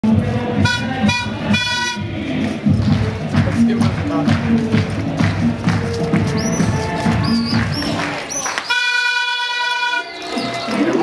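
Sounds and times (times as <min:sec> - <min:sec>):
horn blasts: 0:00.6 - 0:02.2, 0:08.7 - 0:10.5.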